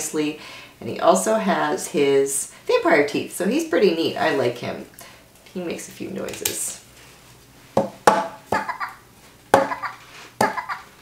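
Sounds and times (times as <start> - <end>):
toy playing recorded laugh: 8.6 - 9.0, 9.6 - 11.0.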